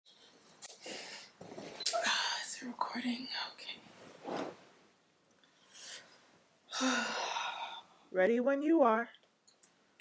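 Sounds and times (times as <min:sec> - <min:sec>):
rustling on leather couch: 0:03.8 - 0:04.9.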